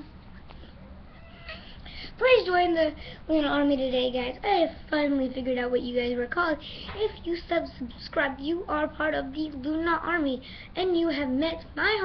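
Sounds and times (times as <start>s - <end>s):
cat meowing faintly: 1.0s - 1.8s.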